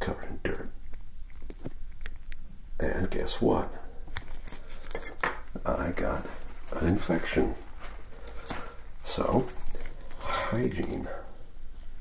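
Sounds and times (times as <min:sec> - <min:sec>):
soft-spoken speech: 0:00.0 - 0:00.8, 0:02.8 - 0:03.9, 0:05.6 - 0:07.6, 0:09.0 - 0:09.6, 0:10.2 - 0:11.4.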